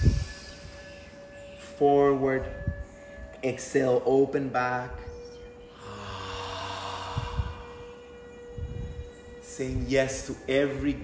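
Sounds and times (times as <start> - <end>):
person breathing into microphone: 0.0 - 1.0, 5.7 - 8.9
background music held tone: 0.0 - 11.0.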